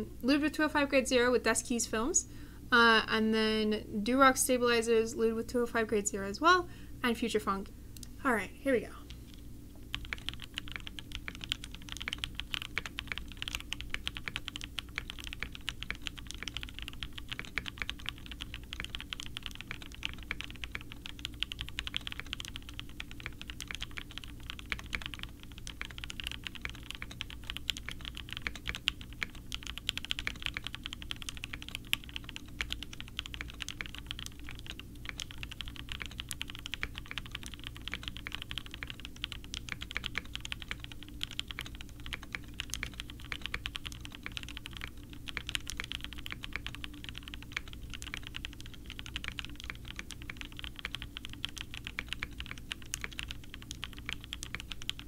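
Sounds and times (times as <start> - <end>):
mechanical keyboard typing: 9.3 - 55.0.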